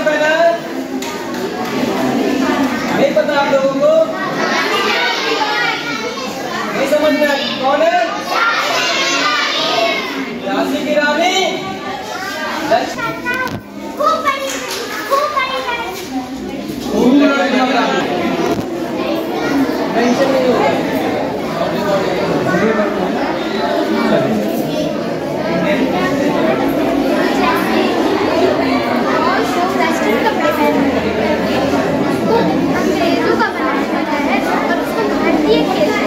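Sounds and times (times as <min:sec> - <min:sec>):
children chattering and calling out: 0:00.0 - 0:36.0.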